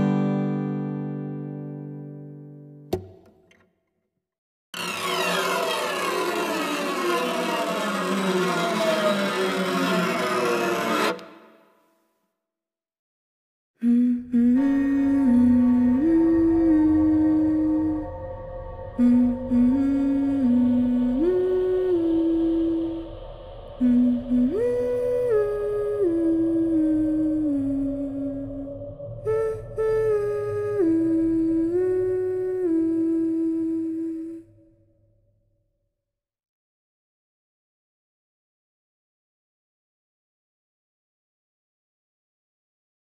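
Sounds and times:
person humming a slow tune: 0:13.8 - 0:34.7.

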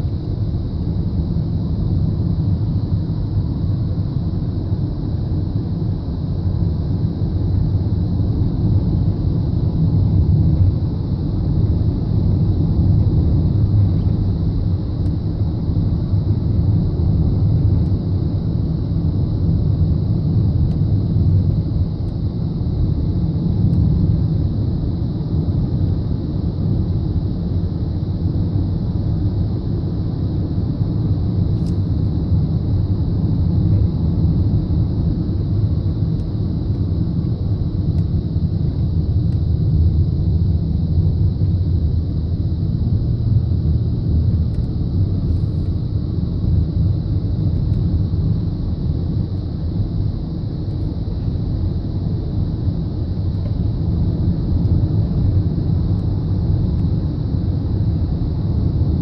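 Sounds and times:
car tyre and engine rumble: 0:30.4 - 0:59.0.

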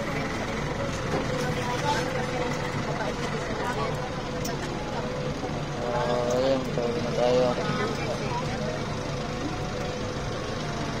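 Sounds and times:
people talking: 0:00.0 - 0:09.7
vehicle engine rumble: 0:00.0 - 0:11.0.

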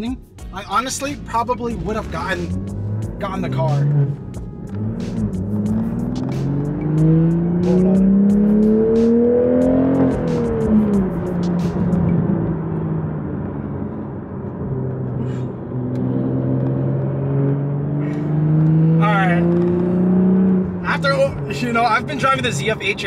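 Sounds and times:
car engine revving in cabin: 0:00.9 - 0:23.0.

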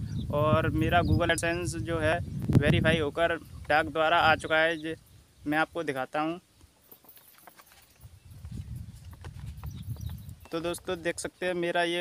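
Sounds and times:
microphone handling knocks: 0:08.4 - 0:10.6.

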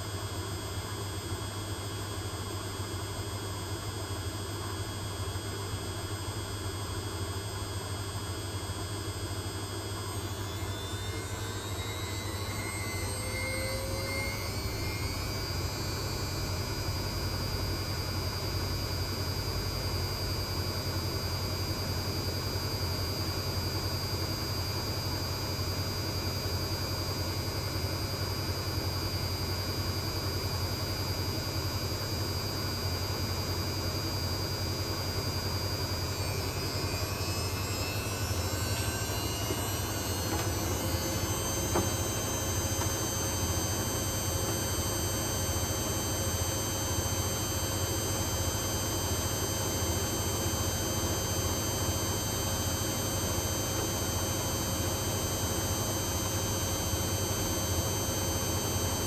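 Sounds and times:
washing machine motor whine: 0:00.0 - 0:59.0.

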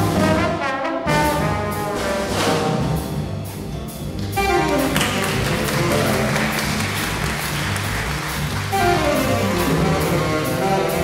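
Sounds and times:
drums: 0:00.0 - 0:11.0
piano: 0:00.0 - 0:11.0
upright bass: 0:01.3 - 0:11.0
saxophone and trombone phrase: 0:04.4 - 0:07.2, 0:08.3 - 0:11.0.

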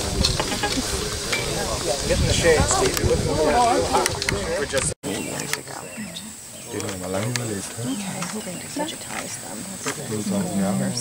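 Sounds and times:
indistinct talk of people: 0:00.0 - 0:11.0.

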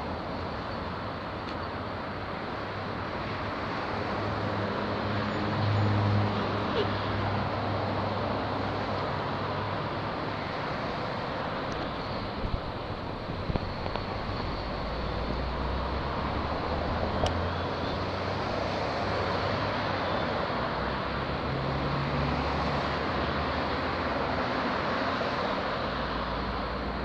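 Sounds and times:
cars passing close by: 0:00.0 - 0:27.0.

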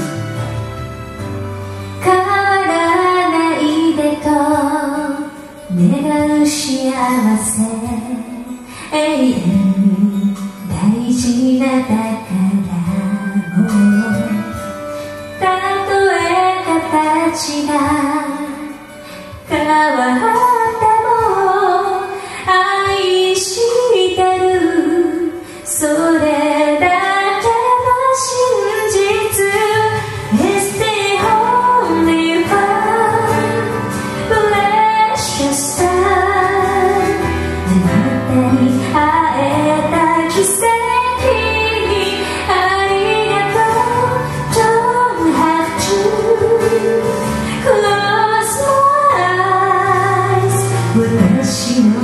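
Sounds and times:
woman singing a slow ballad: 0:01.3 - 0:52.0.

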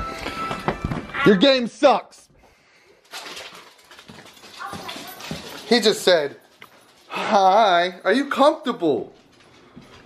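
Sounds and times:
footsteps on wooden floor: 0:04.0 - 0:05.8.

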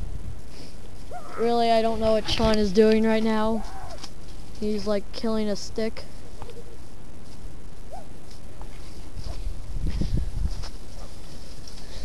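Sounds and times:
low microphone rumble: 0:00.0 - 0:04.7, 0:06.1 - 0:12.0.

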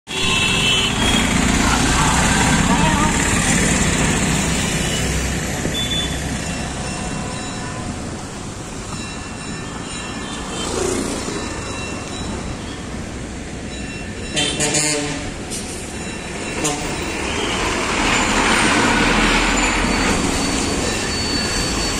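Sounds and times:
vehicle engines and road noise: 0:00.1 - 0:21.9.

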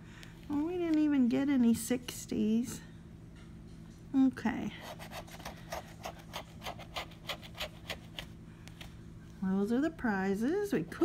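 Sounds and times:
scraper rasping on scratch card: 0:04.8 - 0:08.3.

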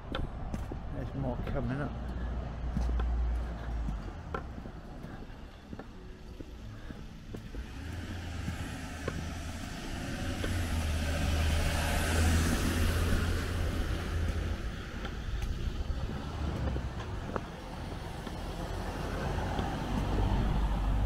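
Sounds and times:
car passing: 0:00.0 - 0:21.0.

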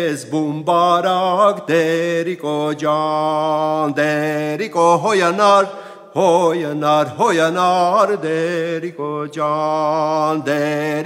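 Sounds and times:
man singing unaccompanied: 0:00.0 - 0:11.0.

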